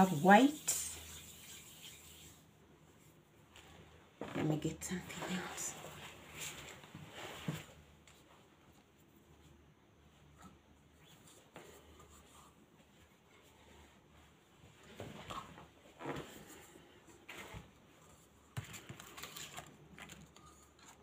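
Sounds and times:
rustling of craft materials: 0.0s - 21.0s.

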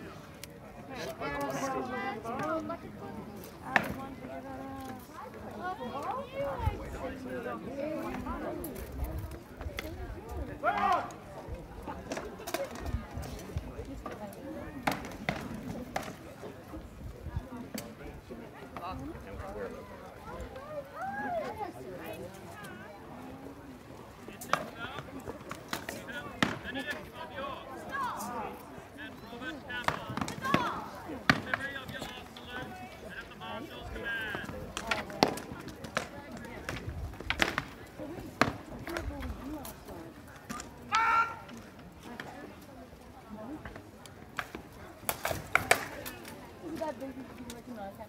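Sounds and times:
spectator chatter: 0.0s - 48.0s.

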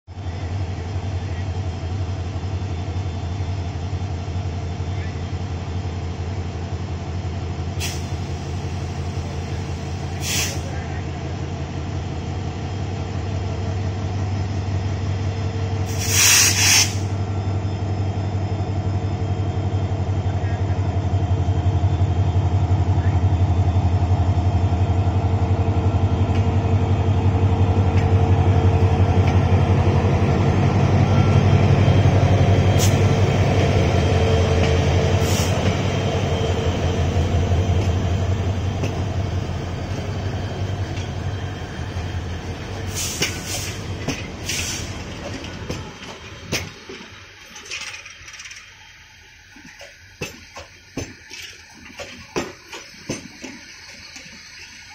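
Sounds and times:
locomotive engine drone: 0.1s - 54.9s
train coaches rolling by: 0.1s - 54.9s
loud double hiss: 7.8s - 10.8s, 15.8s - 17.2s, 42.4s - 45.0s.

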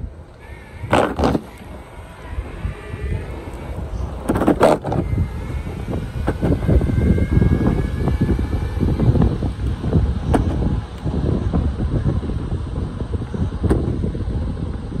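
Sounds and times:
faint high whine: 0.0s - 15.0s
wind buffeting microphone: 0.0s - 15.0s.

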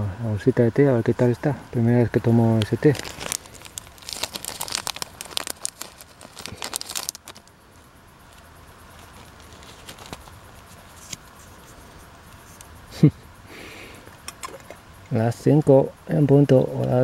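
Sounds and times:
faint hiss: 0.0s - 17.0s
tea bag sachet crinkling: 2.5s - 7.5s, 9.0s - 11.3s.

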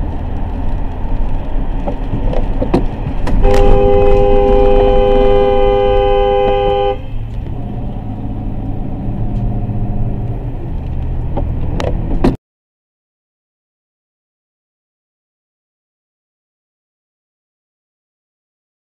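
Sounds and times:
road and tyre rumble: 0.0s - 12.4s
car horn blast: 3.3s - 7.2s.

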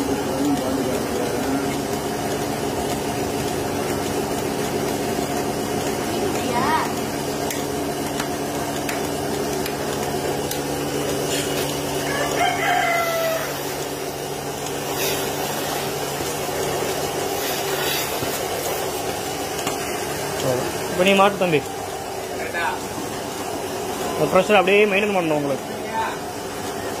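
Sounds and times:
vacuum pump humming: 0.0s - 27.0s
rooster crowing: 12.0s - 14.0s.

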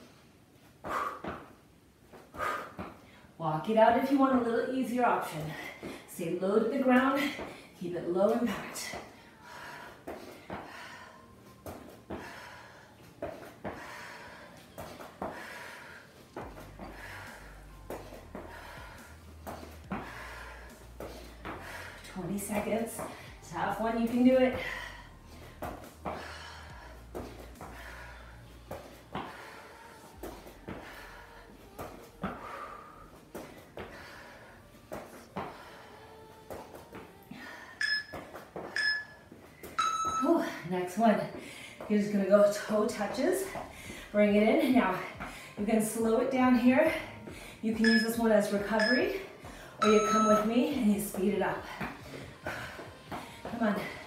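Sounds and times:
woman breathing hard: 0.0s - 3.4s, 5.4s - 6.1s, 8.7s - 22.2s, 23.0s - 23.4s, 24.5s - 40.7s, 41.3s - 41.9s, 42.6s - 45.6s, 46.8s - 47.6s, 49.1s - 50.3s, 51.6s - 54.0s
soft footfalls on a mat: 10.0s - 24.8s, 25.4s - 29.6s.

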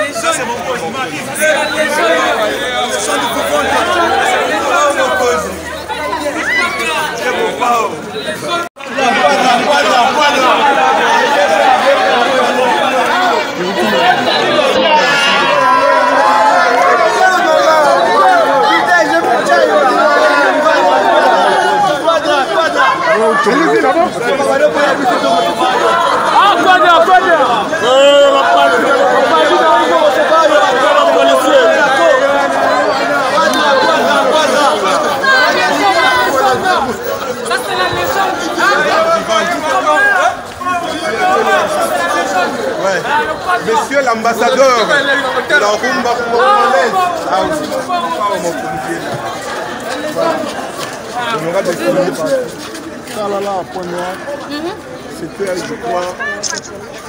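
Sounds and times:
crowd babble: 0.0s - 57.0s.

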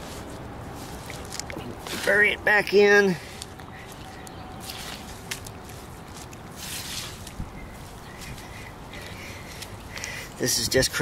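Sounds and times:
soil rustling by hand: 0.0s - 2.4s, 3.1s - 10.7s.

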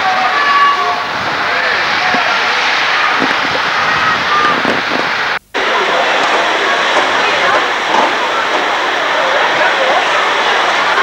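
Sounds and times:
distant voices: 0.0s - 11.0s
steady rushing hiss: 0.0s - 11.0s.

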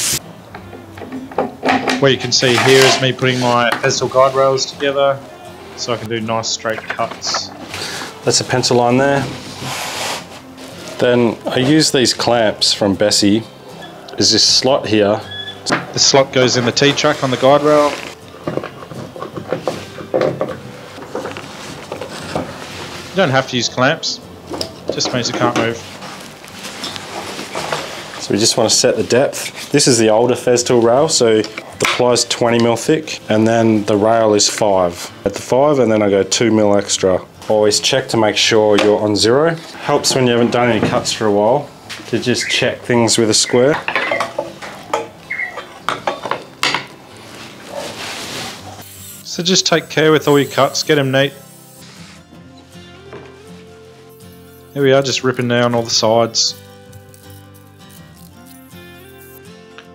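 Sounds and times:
soft hiss: 47.2s - 52.3s.

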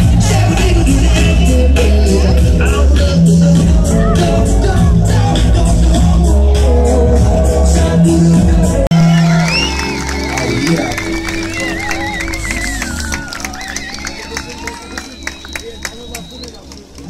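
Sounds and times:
looped beatbox music through speakers: 0.0s - 8.9s
crowd noise: 0.0s - 17.0s
people clapping: 8.9s - 17.0s.

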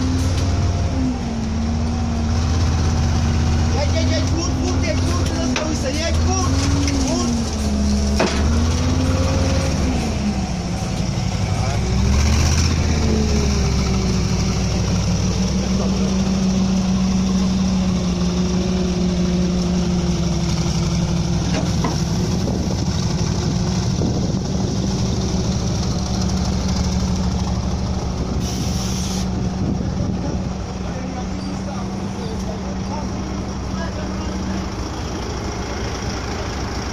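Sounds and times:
armoured car engine revving: 0.0s - 28.6s.

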